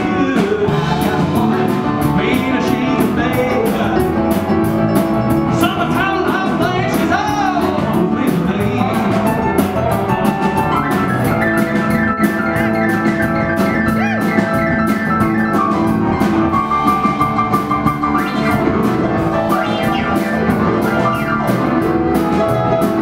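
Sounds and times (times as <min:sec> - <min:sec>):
rock and roll band playing: 0:00.0 - 0:23.0.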